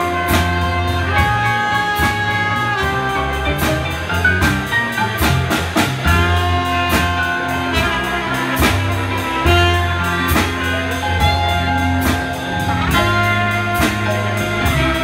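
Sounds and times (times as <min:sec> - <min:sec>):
jazz band playing: 0:00.0 - 0:15.0.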